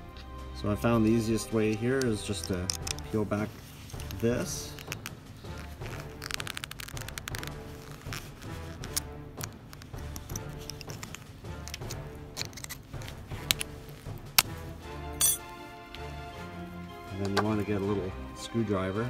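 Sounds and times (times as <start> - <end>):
background music: 0.0 - 19.0
pliers clicking on metal: 1.7 - 3.2, 8.9 - 13.7, 15.2 - 15.4.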